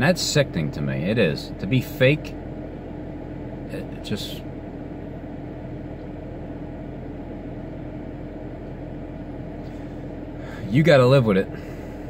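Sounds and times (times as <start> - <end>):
car engine idling: 0.0 - 12.0
ventilation fan blowing: 0.0 - 12.0.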